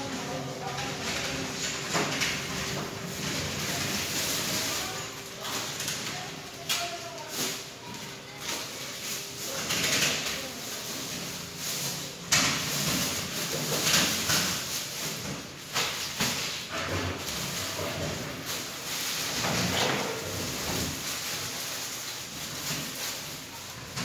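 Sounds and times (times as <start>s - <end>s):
plastic packaging rustling: 0.0s - 24.0s.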